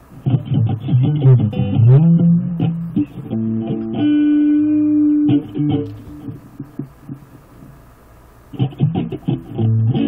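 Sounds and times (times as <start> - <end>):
amplifier hum: 0.0 - 10.0
soft low electric guitar notes: 0.2 - 7.2.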